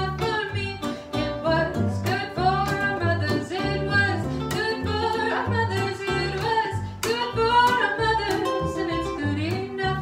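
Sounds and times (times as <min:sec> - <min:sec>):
acoustic guitar: 0:00.0 - 0:10.0
plucked upright bass: 0:00.0 - 0:10.0
woman singing: 0:00.0 - 0:10.0.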